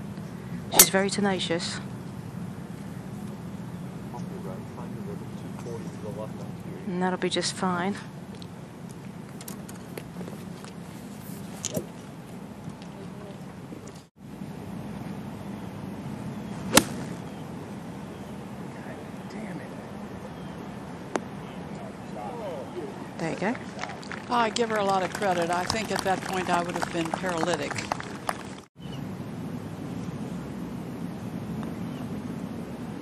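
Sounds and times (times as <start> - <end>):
outdoor background noise: 0.0 - 33.0
golf club hitting ball: 0.7 - 1.0, 16.7 - 17.3.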